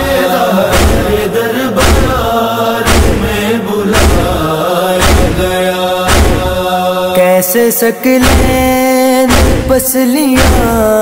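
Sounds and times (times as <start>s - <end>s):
deep chest-beat thumps: 0.0s - 6.9s, 8.2s - 11.0s
voices chanting a lament: 0.0s - 11.0s.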